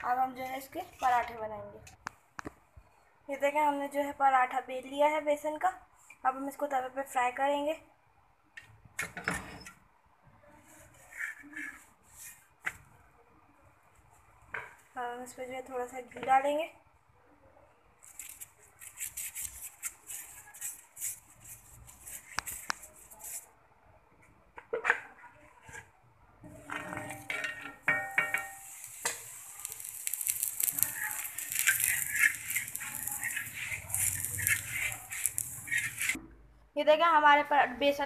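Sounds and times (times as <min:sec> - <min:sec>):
metal spatula scraping griddle: 0:10.9 - 0:12.4, 0:26.5 - 0:36.2
ghee sizzling and crackling: 0:18.0 - 0:23.5, 0:26.4 - 0:36.2.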